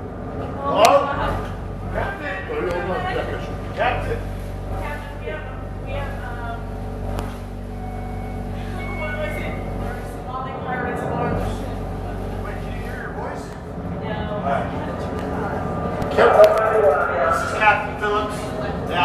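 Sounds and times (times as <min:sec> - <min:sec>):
steady low hum: 0:00.0 - 0:19.0
people talking: 0:00.4 - 0:06.7, 0:08.6 - 0:19.0.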